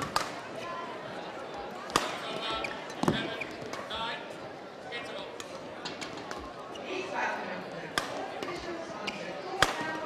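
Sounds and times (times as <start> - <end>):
shoes squeaking on court: 2.4 - 3.8
racket hitting shuttlecock: 9.6 - 10.0.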